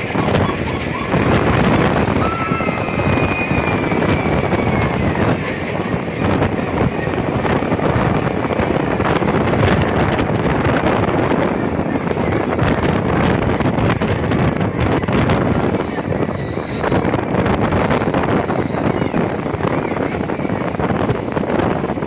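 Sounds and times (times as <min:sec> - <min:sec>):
train wheels rumbling on track: 0:00.0 - 0:22.0
wind buffeting microphone: 0:00.0 - 0:22.0.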